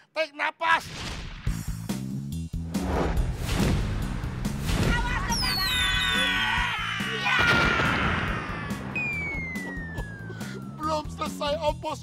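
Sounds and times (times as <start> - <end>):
background music with bass line: 1.6 - 5.3
high falling whistle tones: 5.4 - 6.7, 9.0 - 10.8.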